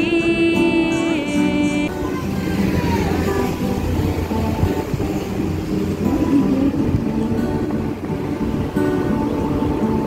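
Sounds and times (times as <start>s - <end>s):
road traffic rumbling: 0.0s - 10.0s.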